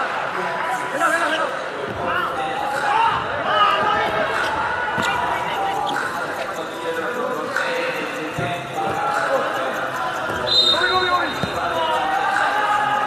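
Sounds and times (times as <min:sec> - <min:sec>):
crowd voices: 0:00.0 - 0:13.0
players shouting: 0:01.0 - 0:07.0, 0:07.6 - 0:13.0
basketball bouncing on court: 0:01.9 - 0:06.2, 0:10.2 - 0:12.5.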